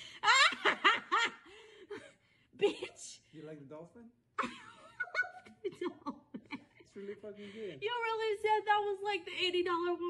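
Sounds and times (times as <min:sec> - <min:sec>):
person laughing: 0:04.4 - 0:06.8.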